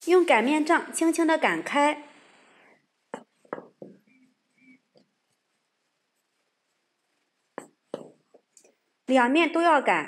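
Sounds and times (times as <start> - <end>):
rolling pin knocking on board: 3.2 - 4.0, 7.6 - 8.5.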